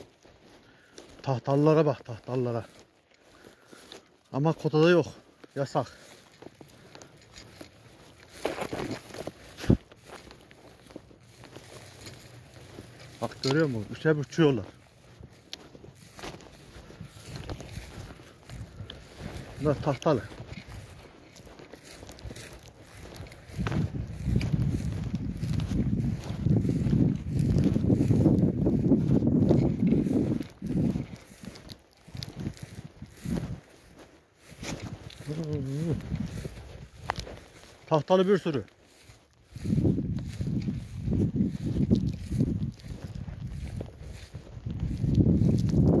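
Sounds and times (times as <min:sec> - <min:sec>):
footsteps through dry grass: 0:00.0 - 0:46.0.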